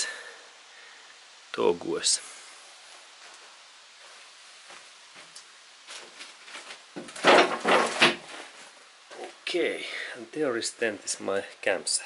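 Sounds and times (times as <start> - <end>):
knocking and scraping handling noise: 5.9 - 9.3.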